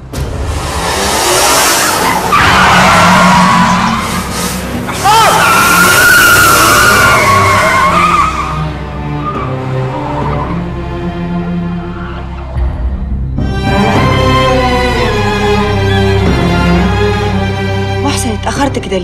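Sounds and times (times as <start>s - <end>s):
film music: 0.0s - 19.0s
car tyres squealing: 0.6s - 10.6s.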